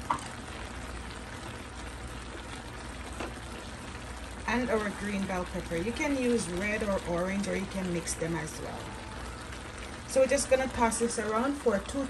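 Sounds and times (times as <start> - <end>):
vegetables sizzling in a wok: 0.0 - 12.0.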